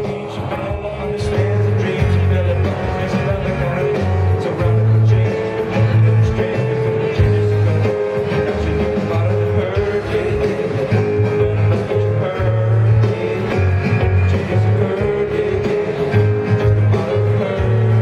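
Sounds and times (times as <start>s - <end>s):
live band playing rock: 0.0s - 18.0s.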